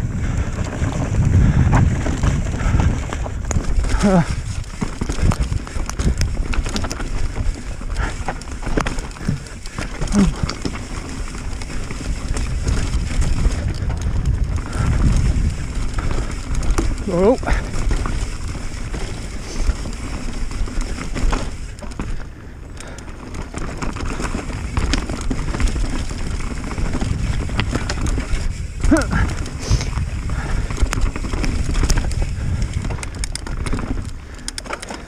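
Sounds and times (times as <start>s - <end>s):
bike rattling clicks: 0.0s - 35.0s
bike tyres rumbling on dirt: 0.0s - 35.0s
wind: 0.0s - 35.0s
rider grunting: 1.3s - 14.0s, 14.6s - 20.2s, 27.5s - 30.9s.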